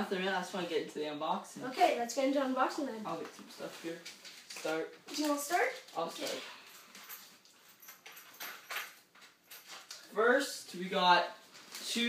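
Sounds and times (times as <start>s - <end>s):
packaging rustling: 3.2s - 7.6s.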